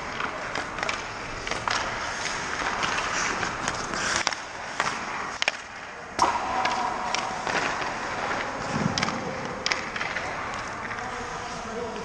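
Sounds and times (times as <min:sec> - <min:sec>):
skates scraping on ice: 0:00.0 - 0:12.0
stick and puck clacks: 0:00.0 - 0:12.0
loud crack: 0:00.1 - 0:10.7.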